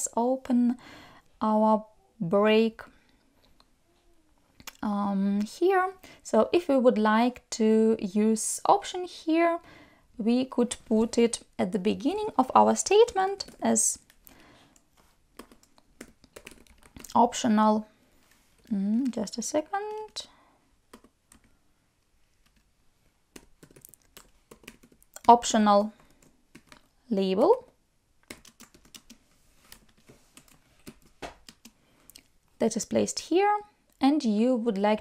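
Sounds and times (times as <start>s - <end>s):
faint keyboard typing: 10.6s - 22.7s, 23.3s - 32.6s.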